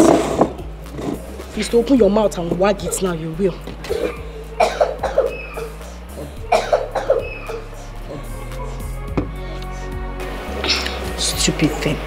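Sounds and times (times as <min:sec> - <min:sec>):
soft background music: 0:00.0 - 0:12.0
person coughing: 0:03.8 - 0:08.3.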